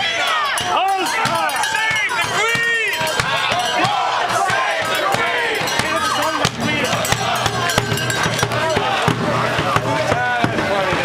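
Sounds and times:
crowd shouting: 0:00.0 - 0:11.0
marching bass drum beats: 0:00.0 - 0:11.0.

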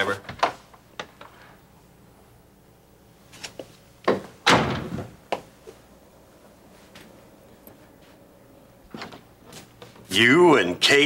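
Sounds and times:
door closing thud: 0:04.1 - 0:05.2, 0:08.9 - 0:09.3.

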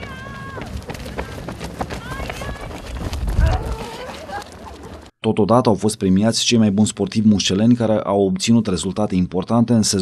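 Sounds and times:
runners footsteps on track: 0:00.0 - 0:05.1.

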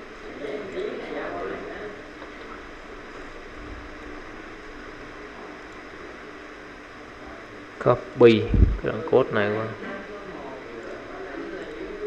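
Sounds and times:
microphone hiss: 0:00.0 - 0:12.0.

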